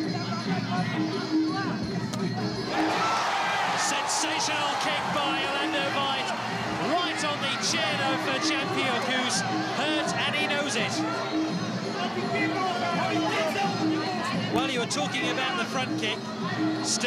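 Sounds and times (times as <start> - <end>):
music: 0.0 - 17.0
crowd shouting and cheering: 2.4 - 17.0.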